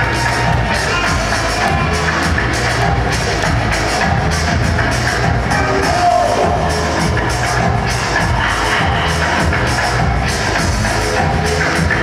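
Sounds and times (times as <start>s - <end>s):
latin dance music: 0.0s - 12.0s.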